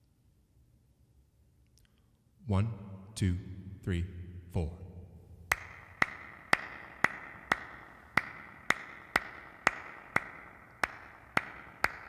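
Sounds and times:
cupped-hand claps: 0:05.5 - 0:12.0.

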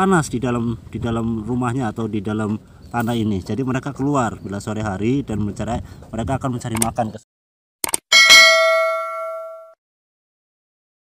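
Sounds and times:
notification bell chime: 0:08.1 - 0:09.8.

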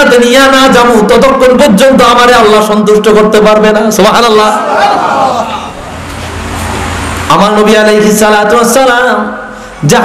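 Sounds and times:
man's amplified voice: 0:00.0 - 0:04.8, 0:07.3 - 0:10.0
steady low rumble: 0:05.7 - 0:07.8.

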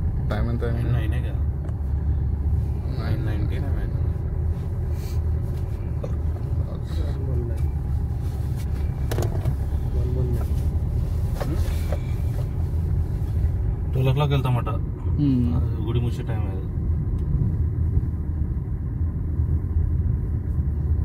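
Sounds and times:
car road and engine rumble: 0:00.0 - 0:21.0.

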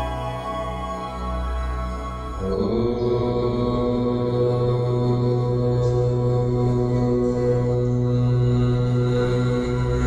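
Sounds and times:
devotional music with chanting: 0:00.0 - 0:10.0.

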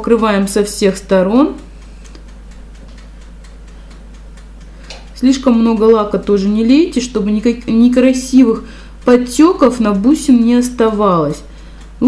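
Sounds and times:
low steady hum: 0:00.0 - 0:12.0
faint light ticks: 0:01.2 - 0:12.0.

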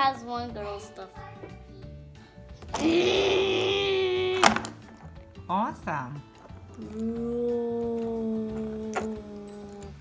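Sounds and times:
child making engine noise: 0:06.8 - 0:10.0.

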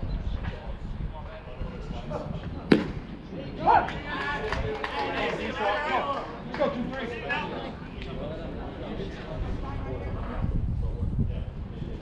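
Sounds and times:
baseball bat crack: 0:02.7 - 0:03.2.

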